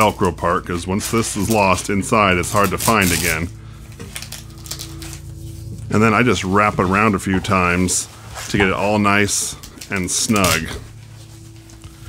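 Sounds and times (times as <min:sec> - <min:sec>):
soft background music: 0:00.0 - 0:12.0
fabric rustling and crinkling: 0:04.1 - 0:12.0.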